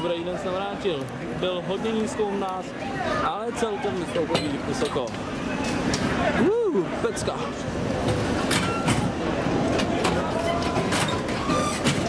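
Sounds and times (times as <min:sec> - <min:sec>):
fairground ride mechanical rumble: 0:04.2 - 0:12.0.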